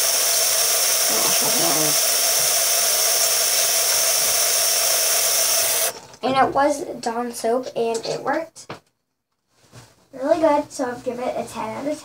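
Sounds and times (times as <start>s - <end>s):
tap water running: 0.0s - 6.4s.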